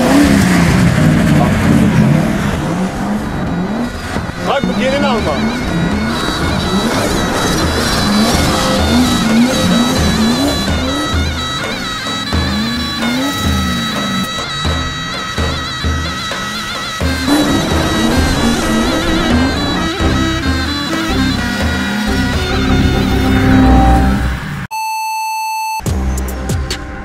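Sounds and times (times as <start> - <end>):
car engine revving: 0.0 - 24.7
shrill reed melody: 1.5 - 24.7
drum beat: 4.1 - 23.1.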